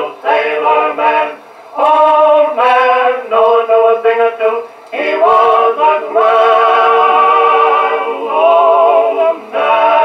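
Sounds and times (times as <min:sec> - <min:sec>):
vocal quartet singing held chords: 0:00.0 - 0:10.0.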